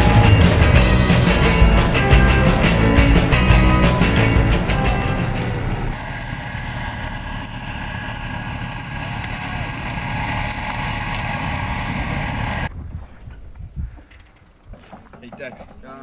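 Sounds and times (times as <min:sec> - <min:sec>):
tracked armoured vehicle engine: 0:00.0 - 0:12.7.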